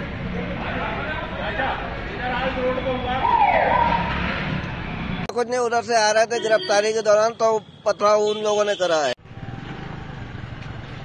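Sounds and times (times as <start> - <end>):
street noise rumble with hiss: 0.0 - 11.0
man's voice: 5.3 - 9.2.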